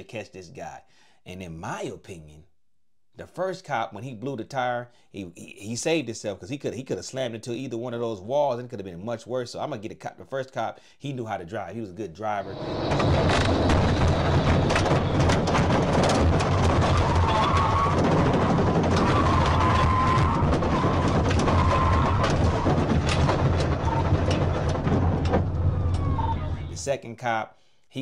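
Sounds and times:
engine tyre and wind drone: 0:12.4 - 0:26.7.

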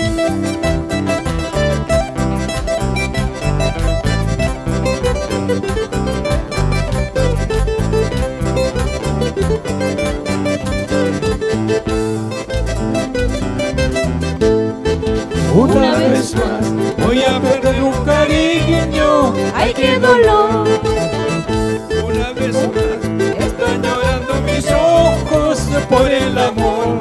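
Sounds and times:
acoustic guitar plucked runs: 0:00.0 - 0:27.0
electric bass: 0:00.0 - 0:27.0
keyboard: 0:00.0 - 0:27.0.

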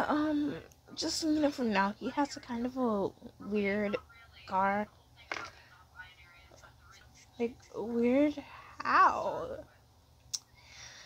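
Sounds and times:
person whispering: 0:05.4 - 0:07.7.

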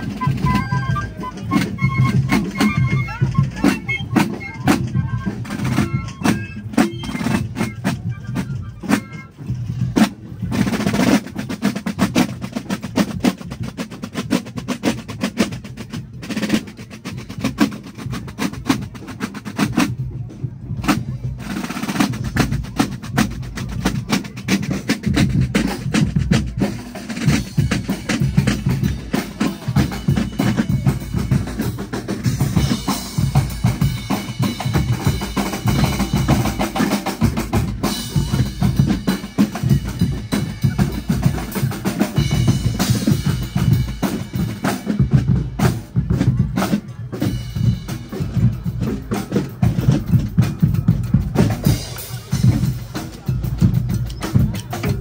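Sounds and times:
marching side drums rolling: 0:00.0 - 0:55.0.

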